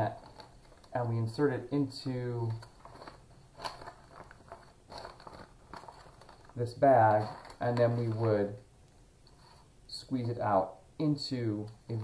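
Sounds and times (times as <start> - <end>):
plastic crinkling and rustling: 0.0 - 8.6.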